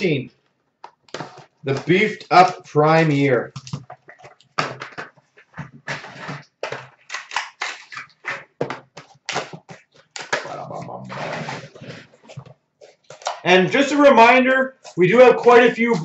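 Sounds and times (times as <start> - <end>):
cardboard packaging rustling: 0.9 - 13.4.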